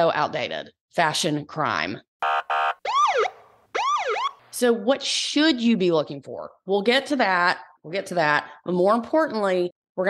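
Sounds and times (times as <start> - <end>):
police siren whoops: 2.2 - 4.4.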